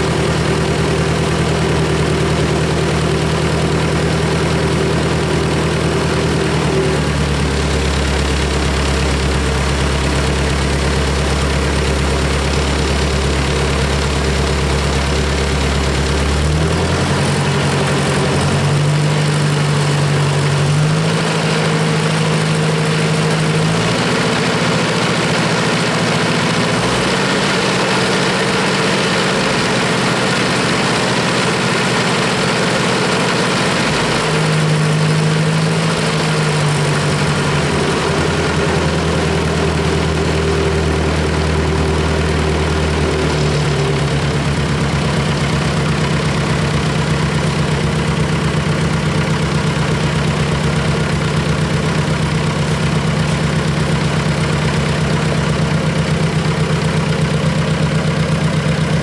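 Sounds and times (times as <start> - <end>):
tractor engine running: 0.0 - 59.0.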